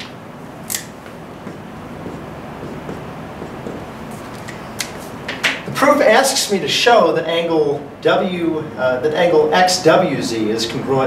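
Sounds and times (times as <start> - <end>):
sharp click: 0.7 - 0.9
marker scratching on whiteboard: 1.4 - 5.3.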